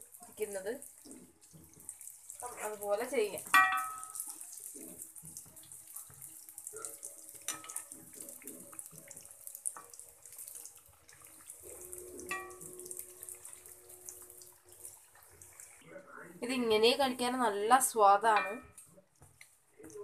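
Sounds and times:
buns sizzling in hot oil: 0.0s - 20.0s
metal skimmer tapping: 3.5s - 4.2s, 18.3s - 18.8s.

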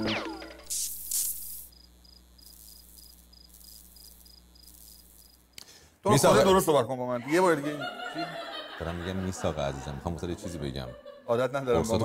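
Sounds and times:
cricket chirping: 0.2s - 5.7s.

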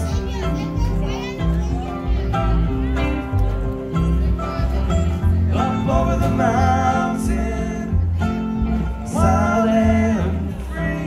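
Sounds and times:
high voices chattering: 0.0s - 11.0s
string band playing: 0.0s - 11.0s.

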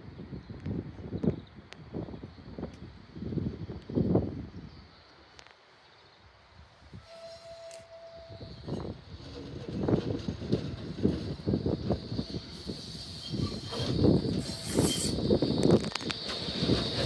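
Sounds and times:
tram rumbling: 6.9s - 17.0s
wheels clunking over rail joints: 7.9s - 17.0s.

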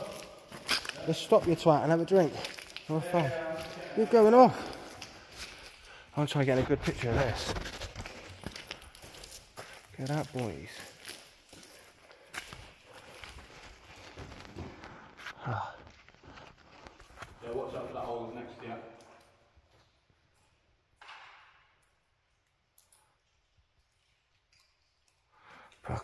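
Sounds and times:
footsteps on stony floor: 0.0s - 18.2s.

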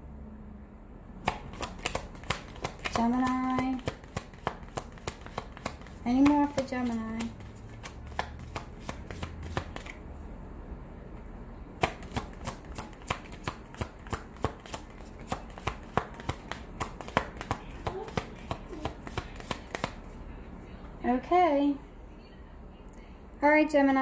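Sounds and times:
cards being shuffled: 1.2s - 10.0s, 11.8s - 20.2s.

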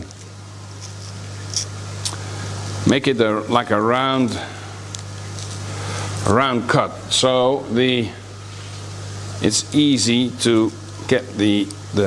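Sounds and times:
low machine hum: 0.0s - 12.0s
man speaking: 6.2s - 8.4s, 9.4s - 12.0s.

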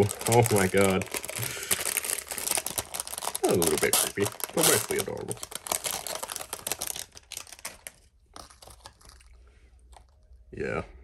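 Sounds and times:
plastic bag crinkling: 0.0s - 10.1s.

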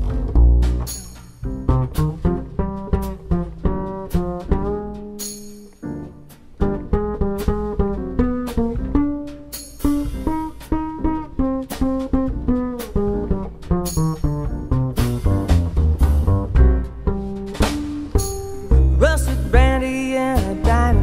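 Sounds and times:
double bass plucked: 0.0s - 21.0s
jazz band instruments: 0.0s - 21.0s.

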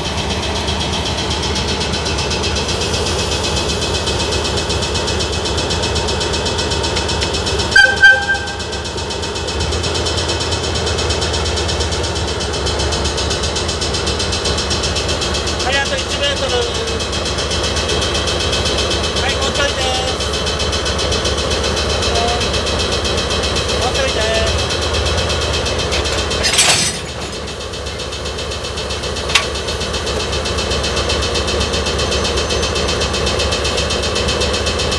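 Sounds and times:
locomotive engine running: 0.0s - 34.9s
sharp metal clank: 26.0s - 27.5s.

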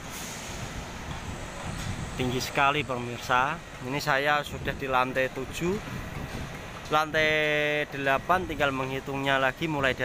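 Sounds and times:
construction site rumble and hiss: 0.0s - 10.0s.

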